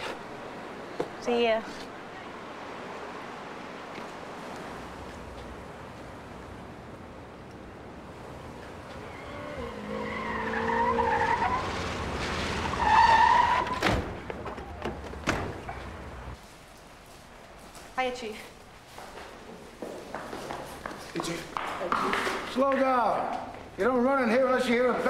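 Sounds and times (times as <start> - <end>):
city street traffic: 0.0 - 25.0
car tyres squealing: 8.9 - 16.2.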